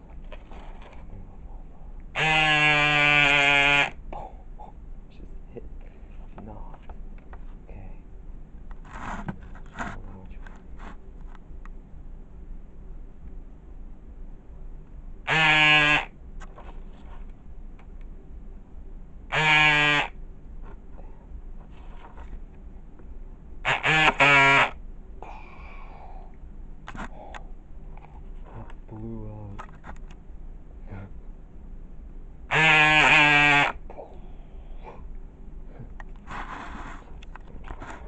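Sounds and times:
loud steady buzzing tone: 2.1s - 5.2s, 11.9s - 37.1s.

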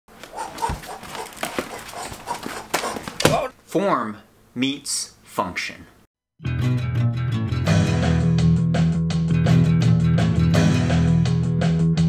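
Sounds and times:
shoes landing with thuds: 0.2s - 3.5s.

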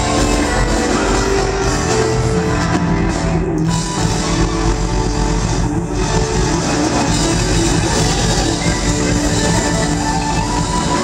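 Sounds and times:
funk band playing: 0.0s - 11.0s.

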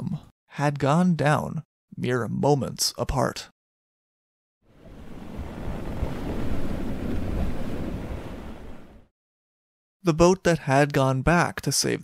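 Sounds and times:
rough sea with wind: 4.7s - 9.1s.

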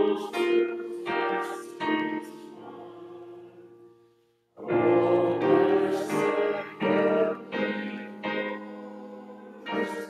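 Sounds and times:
hymn singing: 0.0s - 3.9s, 4.6s - 10.0s.

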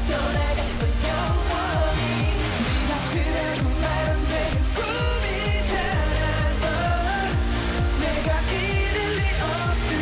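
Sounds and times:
dance track through concert pa: 0.0s - 10.0s
man singing: 0.0s - 10.0s.

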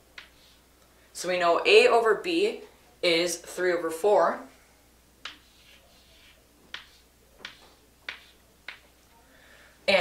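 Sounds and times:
chalk tapping on chalkboard: 0.1s - 0.6s, 5.2s - 9.0s
chalk scratching: 0.2s - 0.7s, 5.2s - 9.0s.

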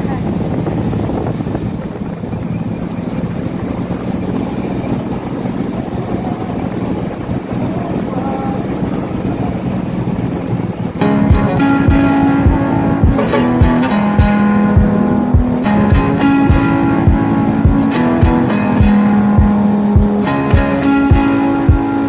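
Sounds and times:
road rumble: 0.0s - 22.0s
vehicle engine droning: 0.0s - 22.0s
wind: 0.0s - 22.0s.

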